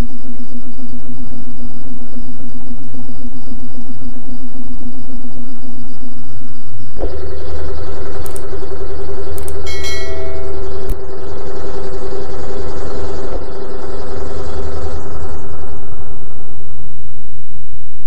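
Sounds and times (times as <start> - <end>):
machine-like hum: 0.0 - 18.0
sharp clicks: 8.2 - 8.5, 9.4 - 9.8
short bell-like ding: 9.4 - 10.6.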